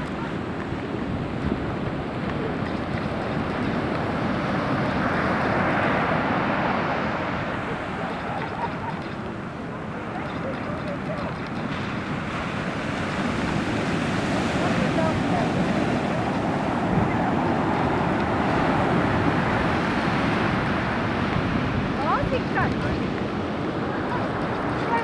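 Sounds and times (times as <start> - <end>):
surf breaking on beach: 0.0 - 25.0
wind buffeting microphone: 0.0 - 25.0.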